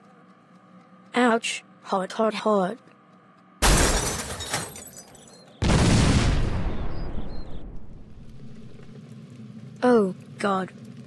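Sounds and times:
explosion blasts: 0:05.6 - 0:08.8.

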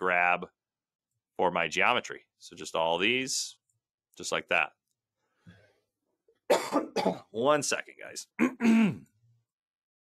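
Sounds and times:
man coughing: 0:06.5 - 0:07.3, 0:08.4 - 0:09.1.

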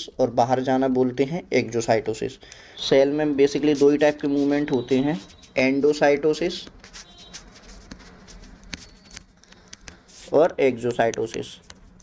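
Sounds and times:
stylus tapping on tablet screen: 0:06.9 - 0:10.0.

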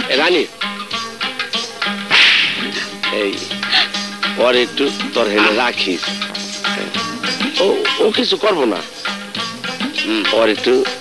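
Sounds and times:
background music: 0:00.0 - 0:11.0
sharp swish effect: 0:02.1 - 0:03.0.

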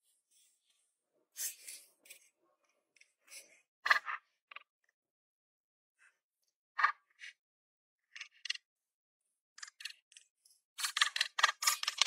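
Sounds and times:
stones clicking and scraping: 0:10.9 - 0:12.0.

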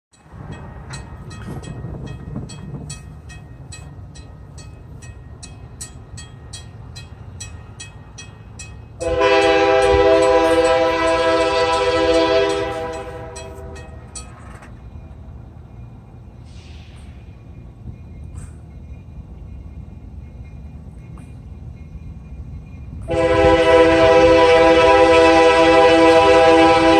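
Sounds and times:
crossing warning bell dinging: 0:00.1 - 0:26.9
locomotive air horn: 0:09.0 - 0:14.1, 0:23.0 - 0:26.9.

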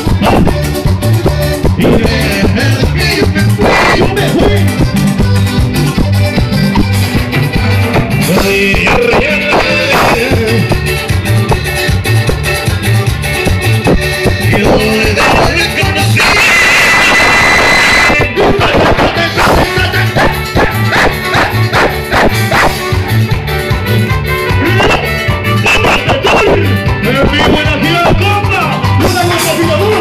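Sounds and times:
live cumbia band over pa: 0:00.0 - 0:30.0.

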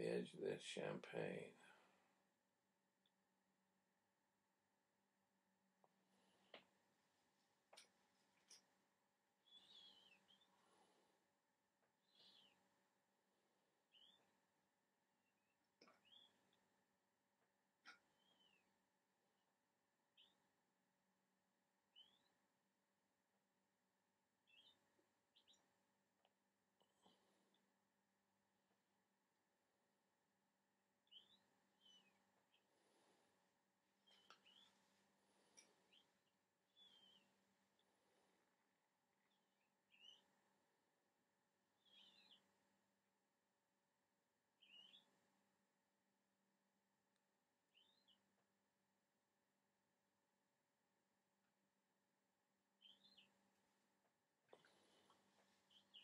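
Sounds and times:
faint high bird chirps: 0:09.4 - 0:11.1, 0:11.8 - 0:12.9, 0:13.6 - 0:16.8, 0:17.8 - 0:18.9, 0:20.0 - 0:20.6, 0:21.8 - 0:22.7, 0:24.4 - 0:25.8, 0:31.0 - 0:33.3, 0:34.0 - 0:40.8, 0:41.7 - 0:42.8, 0:44.5 - 0:45.4, 0:47.6 - 0:48.5, 0:52.8 - 0:53.8, 0:54.4 - 0:56.0.

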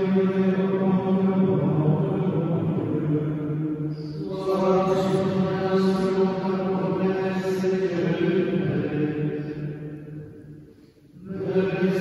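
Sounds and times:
man chanting a prayer: 0:00.0 - 0:09.9, 0:11.1 - 0:12.0.

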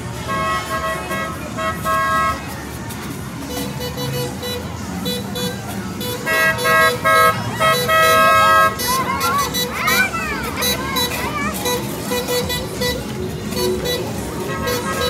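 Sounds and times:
car horns honking: 0:00.0 - 0:02.7, 0:03.4 - 0:15.0
crowd noise: 0:00.0 - 0:15.0.

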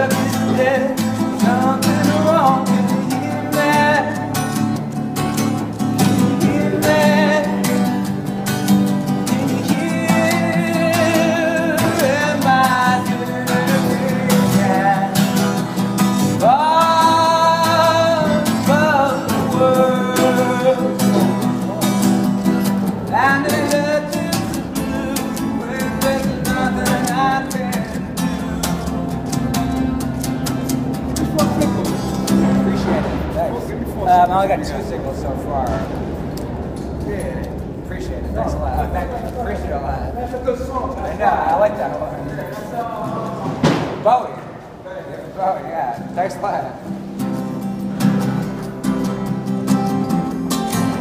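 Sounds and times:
man singing: 0:00.0 - 0:04.8, 0:06.0 - 0:08.2, 0:09.0 - 0:30.2
acoustic guitar strumming: 0:00.0 - 0:51.0.

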